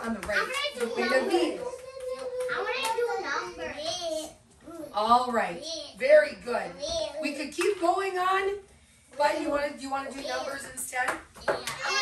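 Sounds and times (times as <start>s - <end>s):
children talking and calling out: 0.3s - 5.0s, 6.8s - 7.4s, 11.4s - 12.0s.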